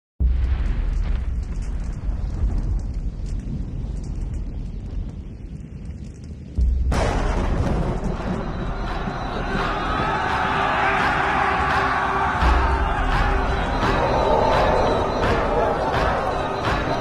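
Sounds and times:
deep cinematic boom: 6.6 - 17.0.

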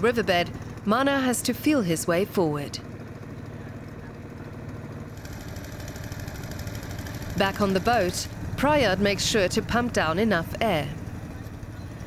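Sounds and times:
small engine running: 0.0 - 12.0.

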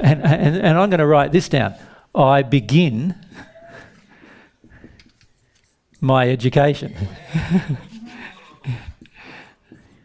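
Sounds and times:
marker pen writing on whiteboard: 3.9 - 6.1, 7.8 - 10.0.

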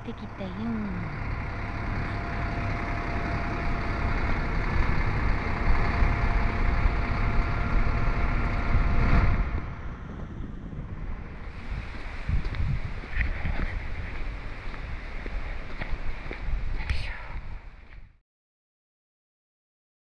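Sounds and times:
vehicle engine idling: 0.0 - 16.6
wind buffeting microphone: 1.1 - 18.1.

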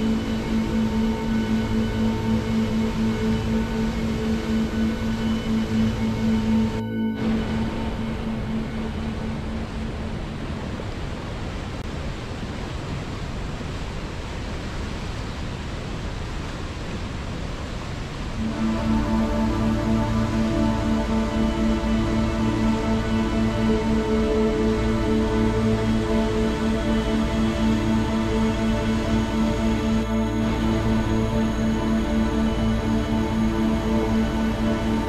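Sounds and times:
ambient music with held notes: 0.0 - 11.8, 18.4 - 35.0.

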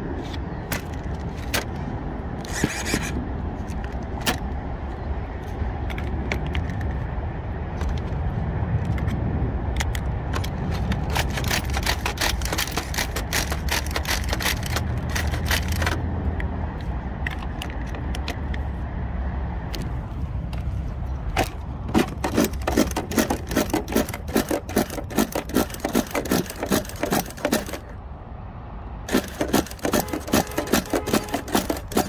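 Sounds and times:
camera handling clicks and scrapes: 0.1 - 7.1, 7.8 - 8.2, 8.8 - 16.0, 16.8 - 18.8, 19.7 - 28.0, 29.1 - 32.0.

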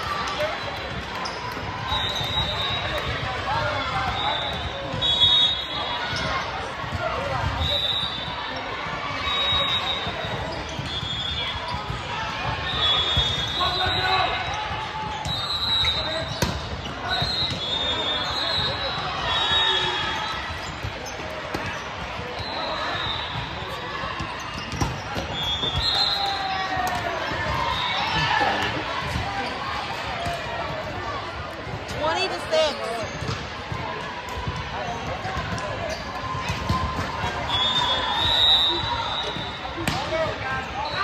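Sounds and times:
voices of players and spectators: 0.0 - 41.0.

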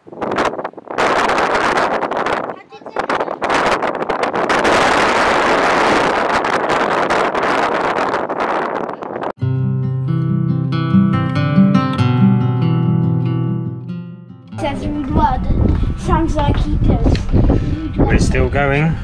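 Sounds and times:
wind noise on microphone: 0.0 - 9.4, 14.6 - 19.0
picked acoustic guitar music: 9.0 - 18.1.

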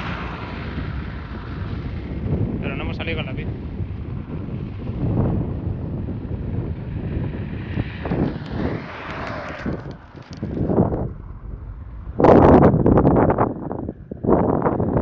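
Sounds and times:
wind buffeting microphone: 0.0 - 15.0
car passing with tyre hiss: 7.2 - 11.8.

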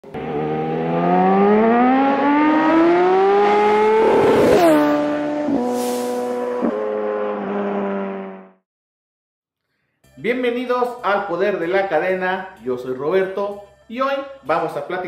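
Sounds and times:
engine accelerating: 0.0 - 8.6
whoosh: 4.1 - 6.7.

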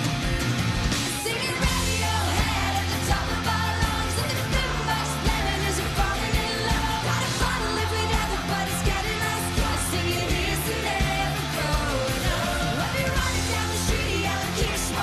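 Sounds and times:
pop-rock band playing: 0.0 - 15.0
woman singing lead: 1.2 - 15.0.

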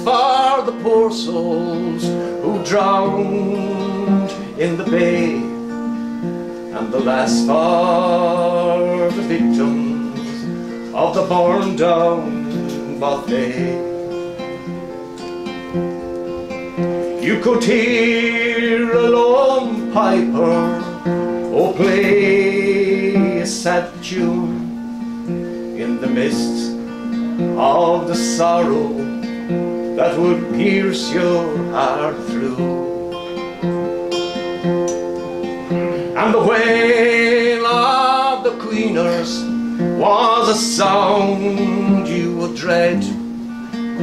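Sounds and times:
acoustic guitar chords picked: 0.0 - 44.0.

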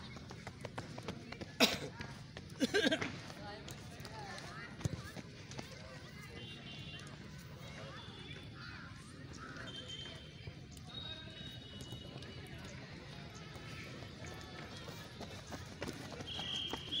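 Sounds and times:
runners' footsteps on dirt: 0.0 - 8.4, 9.5 - 17.0
faint voices: 0.0 - 17.0.

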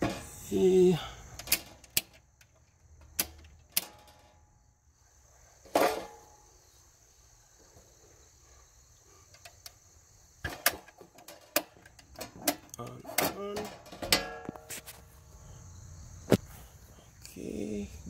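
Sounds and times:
sharp clicks and knocks: 1.4 - 4.4, 10.4 - 14.9.

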